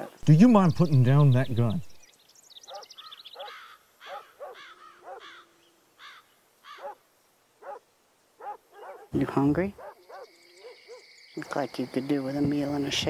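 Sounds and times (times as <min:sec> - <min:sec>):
birds calling: 0:00.0 - 0:13.0.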